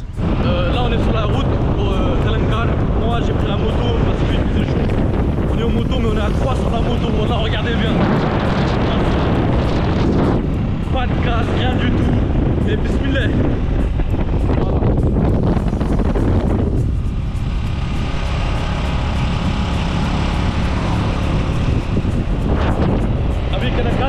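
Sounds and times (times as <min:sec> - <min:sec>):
motorcycle engine: 0:00.0 - 0:24.0
wind rumbling on microphone: 0:00.0 - 0:24.0.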